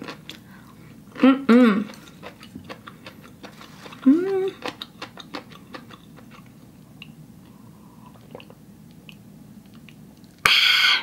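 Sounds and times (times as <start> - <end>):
chewing wet mouth clicks: 8.2 - 10.4.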